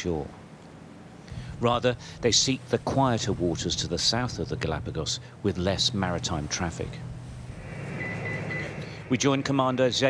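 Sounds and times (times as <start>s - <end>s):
ship engines droning: 0.0s - 10.0s
thin high tone: 7.6s - 9.3s.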